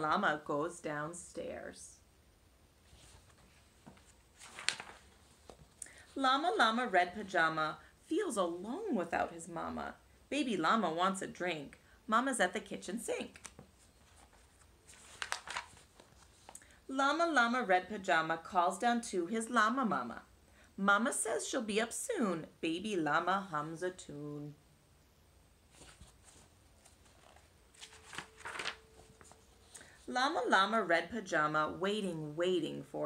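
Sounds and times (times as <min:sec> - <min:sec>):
paper page rustling: 0:02.8 - 0:05.8, 0:13.2 - 0:16.6, 0:25.7 - 0:29.8.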